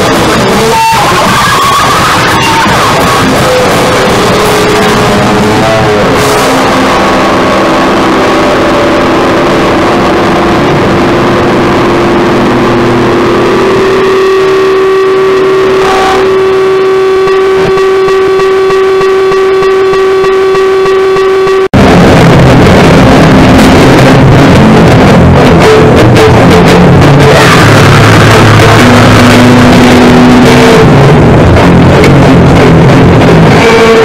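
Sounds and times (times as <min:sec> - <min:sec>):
held feedback tone: 0:00.0 - 0:21.7
harsh distorted noise music: 0:00.0 - 0:34.0.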